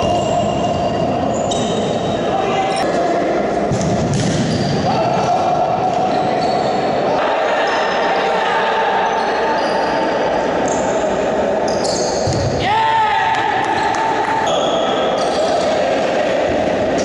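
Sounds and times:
steady hall din: 0.0 - 17.0.

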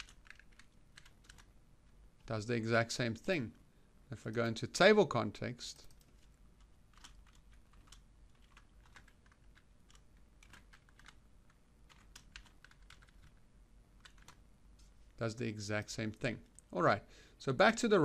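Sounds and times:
keyboard typing: 0.0 - 1.6, 5.8 - 13.4, 14.0 - 14.4.

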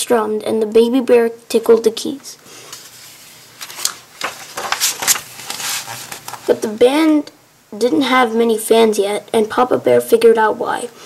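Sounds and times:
paper page turning: 2.7 - 6.7.

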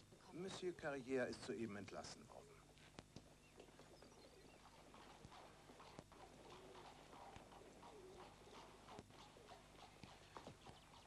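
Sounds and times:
horse hooves clip-clopping: 2.7 - 11.0.

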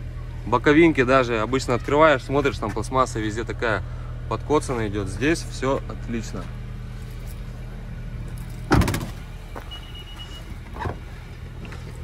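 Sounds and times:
steady low hum: 0.0 - 12.0
car tailgate slamming: 8.7 - 9.2.

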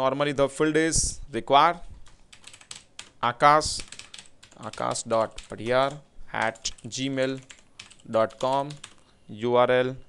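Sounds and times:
man talking: 0.0 - 1.9, 3.2 - 3.9, 4.6 - 10.0
typing on computer keyboard: 2.0 - 9.0.

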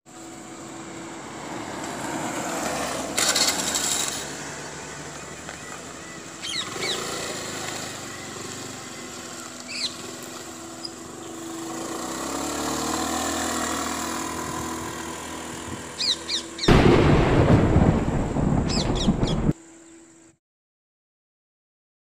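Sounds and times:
motor scooter engine running: 0.2 - 16.7
birds chirping: 4.0 - 12.5, 13.9 - 16.8, 18.4 - 20.3
loud low rushing noise: 16.6 - 19.6.

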